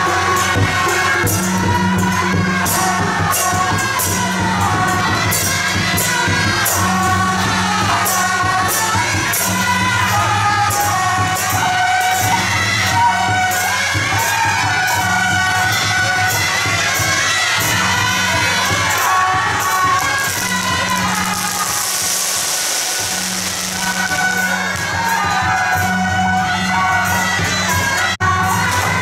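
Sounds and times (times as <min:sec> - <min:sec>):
marching band playing: 0:11.4 - 0:29.0
rushing hissy noise: 0:20.0 - 0:25.2.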